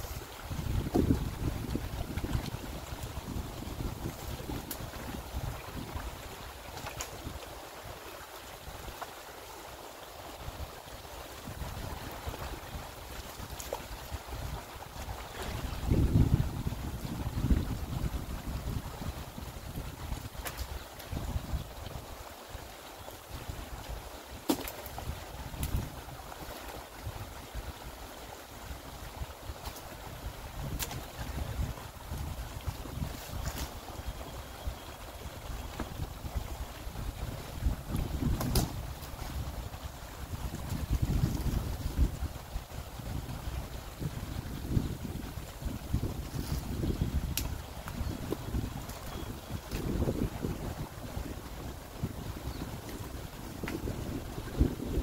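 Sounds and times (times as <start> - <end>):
wind rumble on microphone: 0.0 - 9.1, 10.2 - 55.0
water sloshing and splashing: 0.0 - 18.9, 23.2 - 27.6, 28.8 - 44.1
wood snapping and knocking: 24.5 - 24.9, 38.4 - 38.8.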